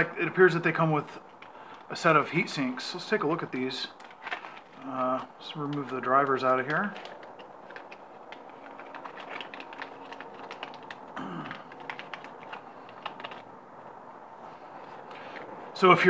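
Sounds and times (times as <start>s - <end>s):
plastic bag crinkling: 3.9s - 13.5s.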